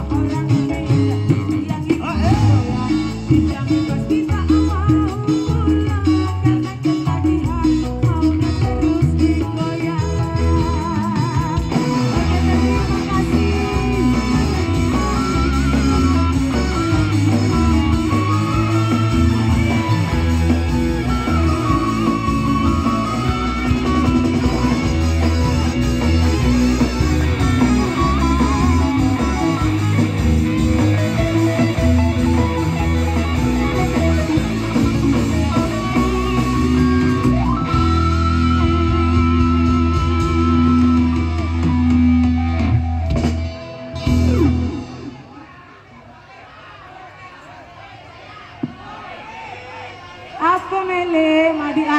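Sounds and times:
live band with electric guitars: 0:00.0 - 0:46.3.

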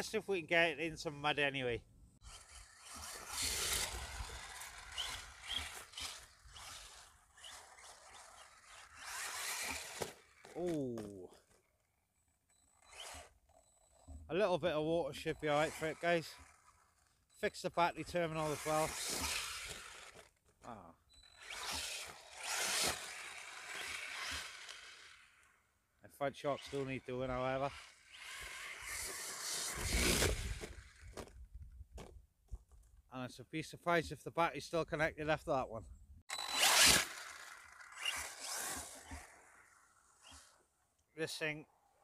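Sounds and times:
toy truck crashing on grass: 0:02.3 - 0:11.6, 0:18.4 - 0:20.6, 0:21.4 - 0:25.5, 0:27.7 - 0:31.4, 0:36.3 - 0:40.6
man exclaiming: 0:10.6 - 0:11.3.

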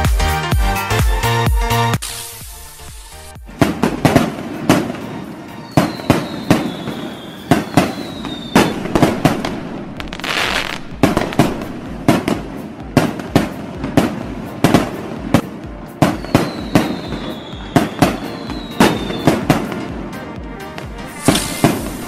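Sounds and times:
hissing burst: 0:02.0 - 0:03.4, 0:21.1 - 0:22.0
firework whistle falling: 0:02.0 - 0:11.7, 0:16.0 - 0:19.8, 0:21.0 - 0:22.0
firecrackers banging: 0:02.0 - 0:22.0.

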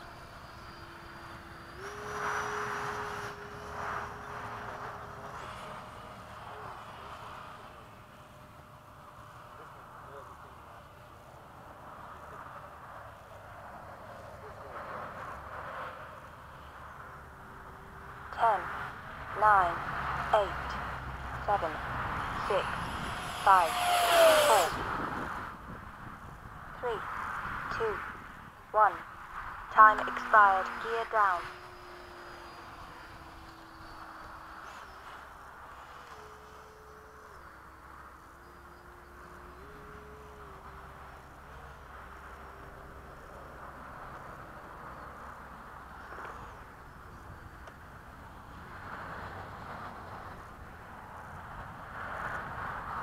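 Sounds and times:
model jet fan whining: 0:00.0 - 0:53.0
rush of air: 0:21.8 - 0:28.6.

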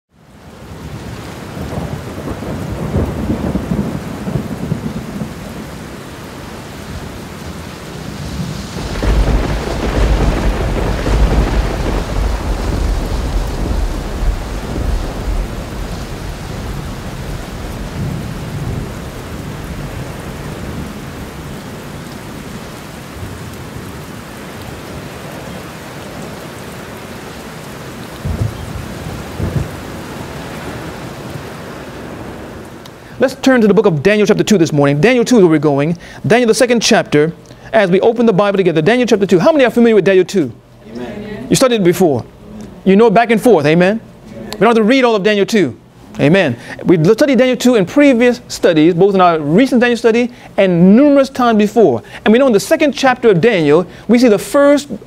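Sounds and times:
steady rain: 0:00.1 - 0:55.0
rolling thunder: 0:00.7 - 0:26.7, 0:27.8 - 0:32.8.

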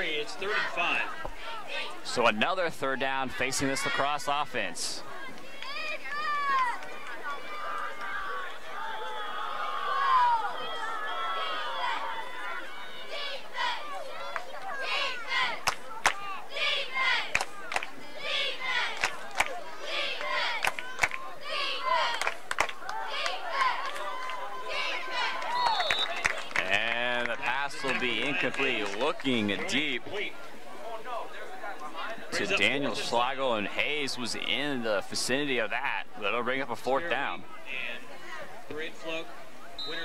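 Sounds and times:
crowd shouting: 0:00.0 - 0:33.8.

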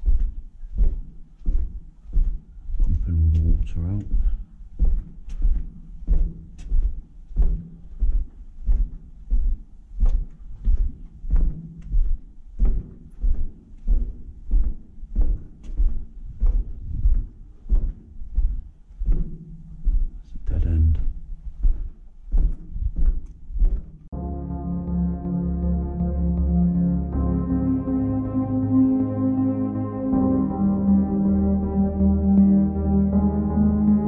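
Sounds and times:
footsteps on concrete floor: 0:00.0 - 0:24.2.

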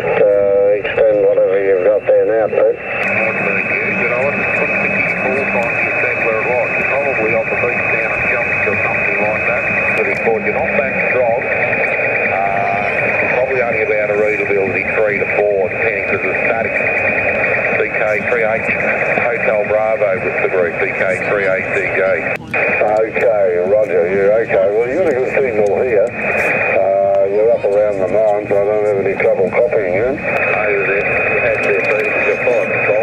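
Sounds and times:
radio band noise and hiss: 0:00.0 - 0:33.0
radio voice through speaker: 0:00.0 - 0:33.0.

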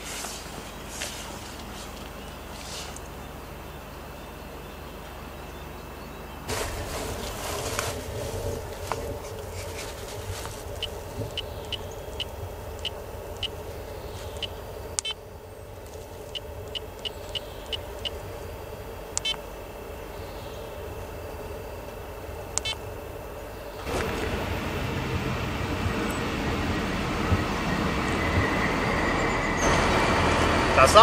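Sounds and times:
vehicle and train rumble: 0:00.0 - 0:31.0.

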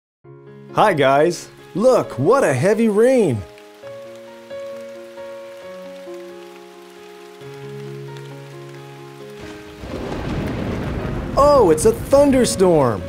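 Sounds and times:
rain: 0:00.9 - 0:13.0
thunder rumble: 0:09.3 - 0:13.0.

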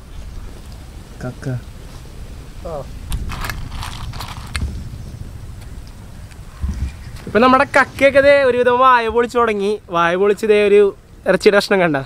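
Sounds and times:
man's voice: 0:07.3 - 0:10.7.

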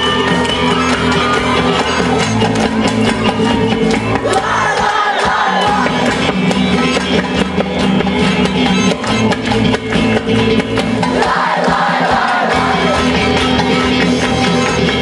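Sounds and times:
crowd singing and shouting: 0:00.0 - 0:15.0
drum beat: 0:00.0 - 0:15.0
live band music: 0:00.0 - 0:15.0.

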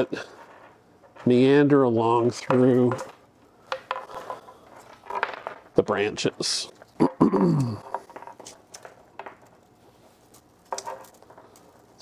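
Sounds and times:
twigs and wire rustling and ticking: 0:07.9 - 0:12.0.

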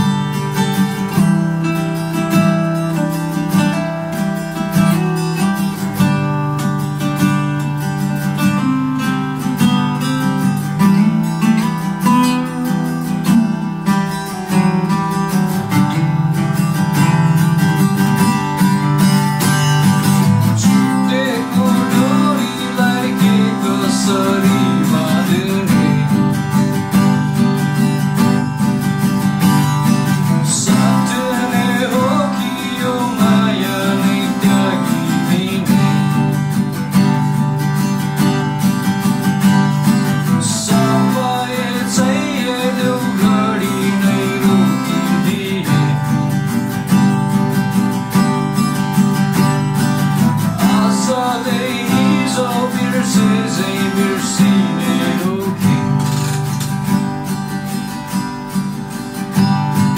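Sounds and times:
acoustic guitars playing: 0:00.0 - 0:59.9
man singing: 0:20.6 - 0:26.8, 0:30.2 - 0:36.4, 0:40.2 - 0:46.5, 0:50.4 - 0:56.2.

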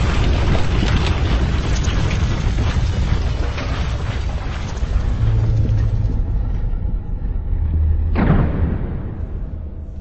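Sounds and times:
deep steady rumble: 0:00.0 - 0:10.0.

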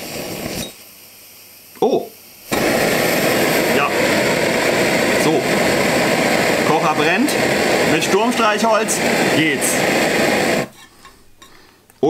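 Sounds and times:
stove burner roaring: 0:00.0 - 0:11.8.

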